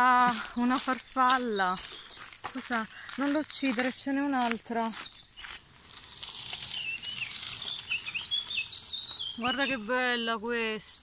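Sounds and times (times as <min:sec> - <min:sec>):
small bird singing: 0:00.0 - 0:05.6, 0:06.5 - 0:11.0
steady outdoor hiss: 0:01.8 - 0:11.0.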